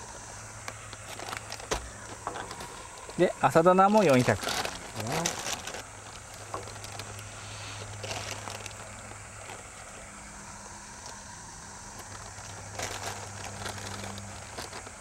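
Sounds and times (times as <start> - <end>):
steady low hum: 0.0 - 15.0
paper bag and powder rustling: 1.0 - 10.1, 12.0 - 15.0.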